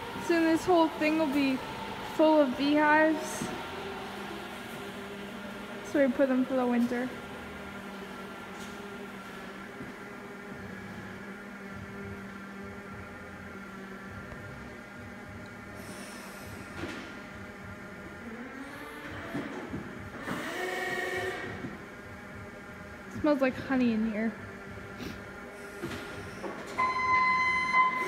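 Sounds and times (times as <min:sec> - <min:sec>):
forklift motor whining: 0:17.6 - 0:21.9.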